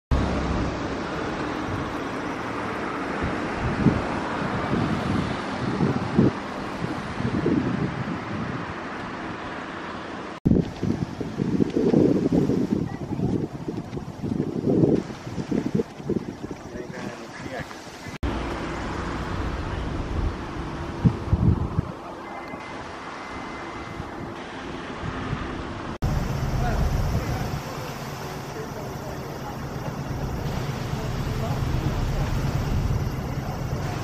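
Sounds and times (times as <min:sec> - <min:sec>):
wind buffeting microphone: 0:00.1 - 0:09.5, 0:10.4 - 0:18.2, 0:19.0 - 0:22.0, 0:25.0 - 0:34.0.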